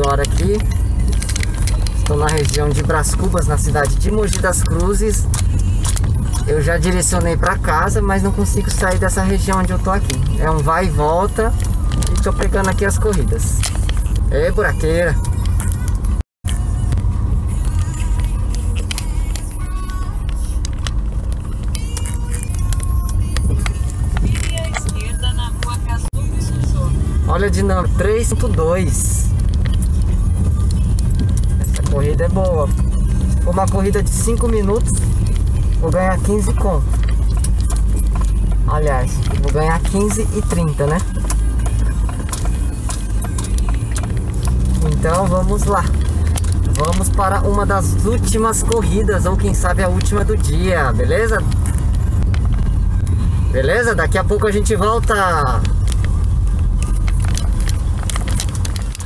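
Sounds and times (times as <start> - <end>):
car rumbling over potholes: 0.0 - 59.0.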